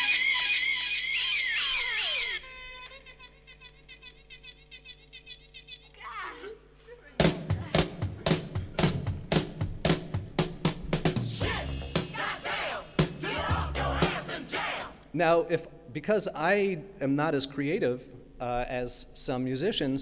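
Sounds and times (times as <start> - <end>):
drum beat: 7.2 - 15.0.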